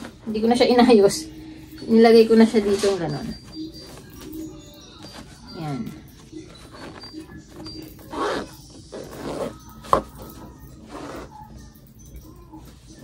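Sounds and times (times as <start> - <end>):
clothes and fabric rustling: 0.0 - 13.0.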